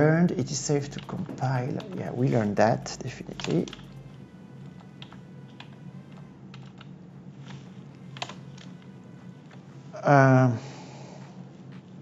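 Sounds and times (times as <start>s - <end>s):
typing on computer keyboard: 0.3s - 4.0s, 6.5s - 6.9s, 8.2s - 8.7s.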